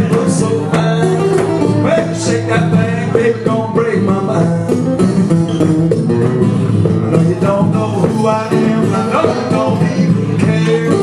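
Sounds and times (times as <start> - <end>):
guitar strumming groove: 0.0 - 11.0.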